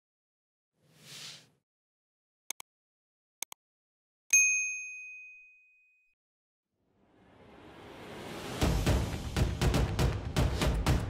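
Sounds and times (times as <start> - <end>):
notification bell ding: 4.4 - 6.1.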